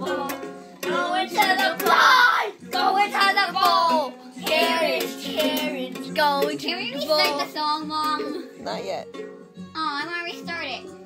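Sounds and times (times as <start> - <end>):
child singing: 0.0 - 8.6, 9.7 - 11.0
toy ukulele strumming: 0.0 - 9.3.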